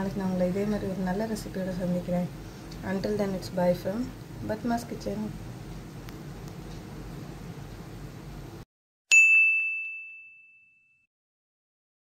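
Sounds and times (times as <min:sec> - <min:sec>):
bell-like ding: 0:09.1 - 0:11.1.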